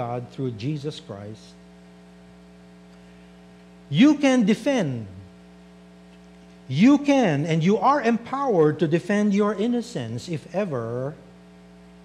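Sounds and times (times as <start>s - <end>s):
man's voice: 0.0s - 1.6s, 3.9s - 5.2s, 6.7s - 11.2s
electrical mains hum: 0.0s - 12.0s.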